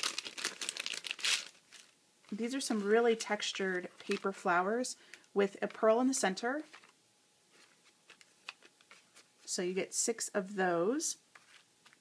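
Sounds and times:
cellophane bag crinkling: 0.0s - 4.5s, 7.6s - 9.3s.

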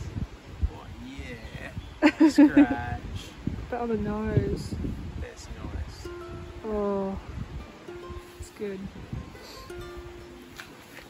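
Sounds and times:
plucked string instrument: 5.9s - 11.0s.

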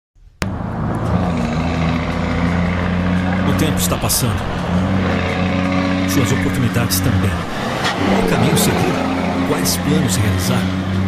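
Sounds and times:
roadside crowd noise: 0.4s - 11.0s
truck diesel engine running: 0.4s - 11.0s.

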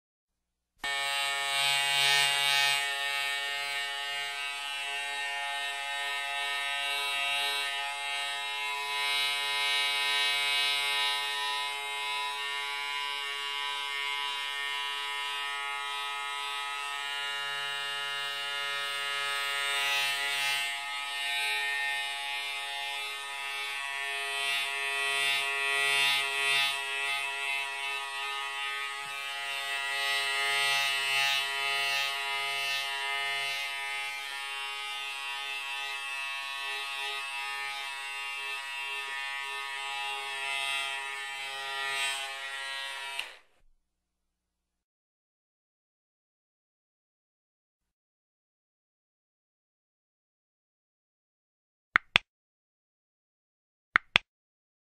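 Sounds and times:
electric hair clipper buzzing: 0.8s - 43.6s.

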